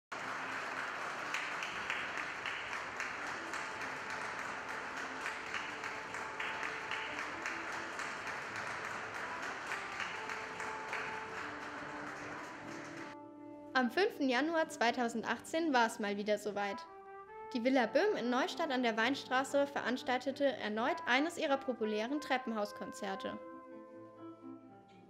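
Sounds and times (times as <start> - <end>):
audience applauding: 0.1 - 13.2.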